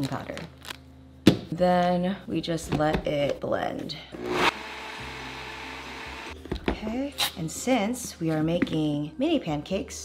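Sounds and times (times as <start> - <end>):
blender starting clatter: 4.2 - 6.4
blender whirring: 4.2 - 6.4.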